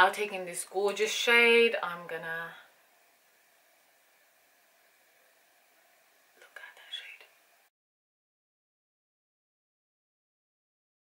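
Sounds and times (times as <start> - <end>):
faint room hiss: 0.0 - 7.7.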